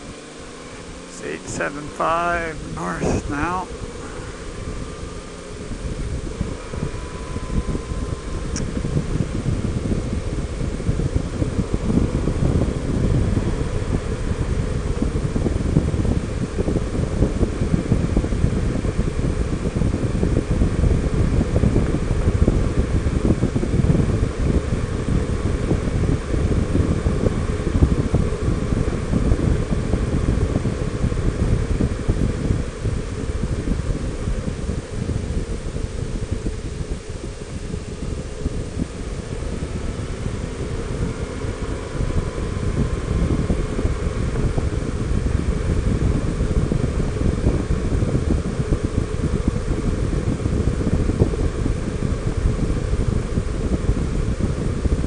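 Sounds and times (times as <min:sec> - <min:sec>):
motorcycle engine: 0:00.0 - 0:47.5
wind buffeting microphone: 0:00.0 - 0:55.0.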